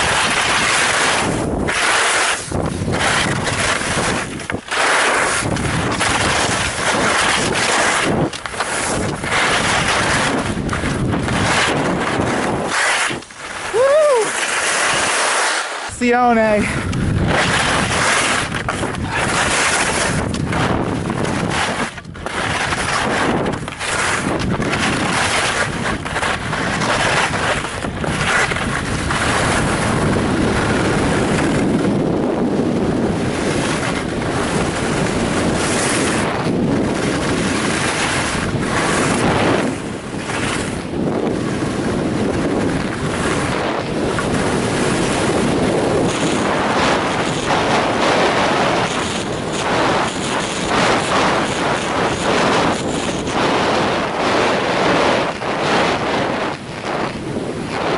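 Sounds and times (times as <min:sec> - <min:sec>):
skis scraping over snow: 0:00.0 - 0:57.9
wind rushing over microphone: 0:00.0 - 0:57.9.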